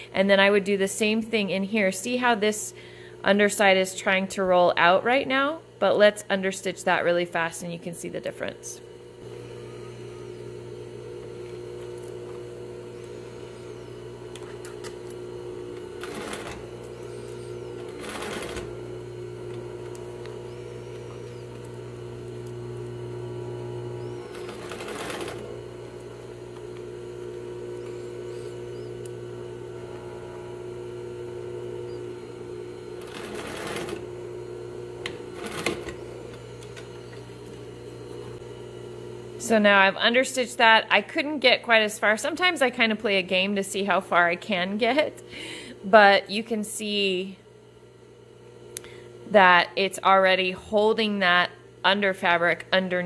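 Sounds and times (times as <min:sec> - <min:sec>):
sewing machine running: 0:09.2 - 0:37.6.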